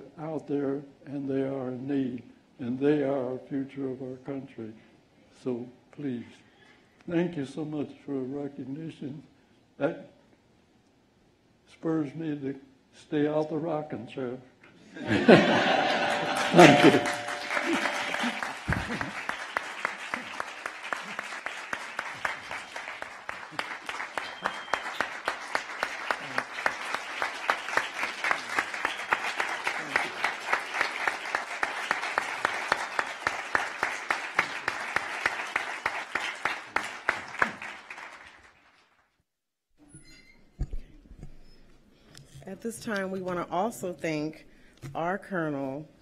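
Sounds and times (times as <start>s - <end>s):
audience applauding: 15.1s - 38.9s.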